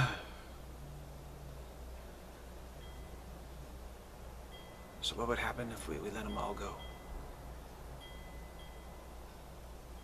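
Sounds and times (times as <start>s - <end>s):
low steady hum: 0.0s - 10.0s
faint high chime tones: 2.8s - 3.6s, 4.4s - 10.0s.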